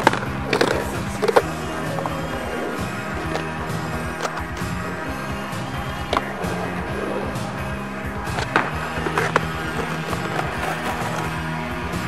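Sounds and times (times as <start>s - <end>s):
skateboard clacks: 0.0s - 4.8s, 8.2s - 11.5s
music with held tones: 0.0s - 12.0s
skateboard wheels rolling on asphalt: 0.0s - 12.0s.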